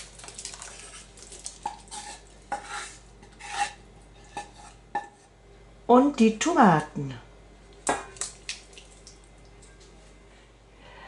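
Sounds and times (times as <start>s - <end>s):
splashes and drips: 0.0s - 1.9s, 7.8s - 9.8s.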